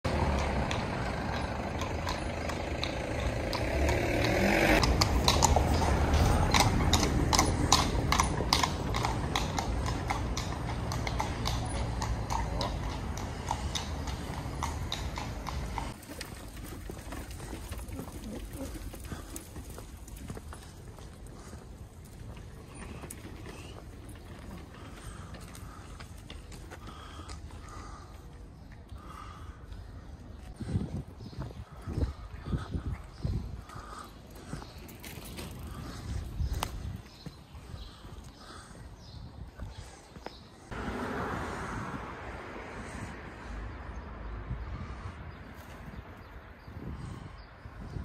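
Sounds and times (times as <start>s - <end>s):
carriage low rumble: 0.0s - 29.6s
hooves clopping on cobblestones: 0.1s - 40.7s
footsteps on stone paving: 15.8s - 40.7s.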